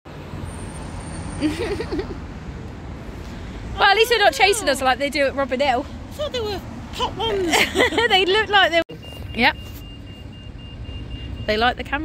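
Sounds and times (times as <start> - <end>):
road traffic rumble: 0.1 - 12.0.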